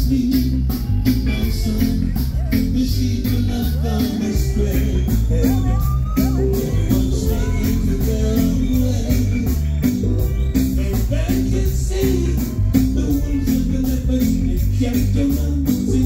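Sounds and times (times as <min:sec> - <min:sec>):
deep bass line: 0:00.0 - 0:16.0.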